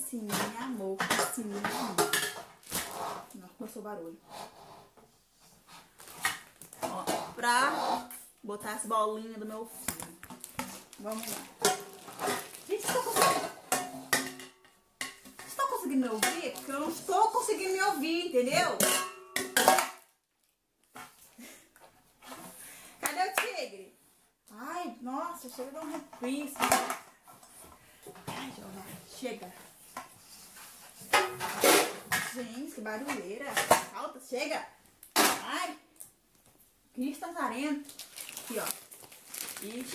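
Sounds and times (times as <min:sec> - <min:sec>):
metal cake pans clattering: 0:00.2 - 0:03.2, 0:10.6 - 0:17.6, 0:18.4 - 0:20.0, 0:30.9 - 0:34.0
metal pots clanking: 0:11.4 - 0:15.6, 0:18.6 - 0:20.0, 0:31.1 - 0:32.4.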